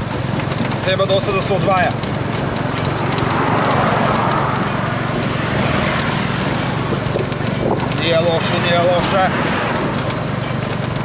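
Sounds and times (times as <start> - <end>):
auto rickshaw engine running: 0.0 - 11.0
road and wind noise: 0.0 - 11.0.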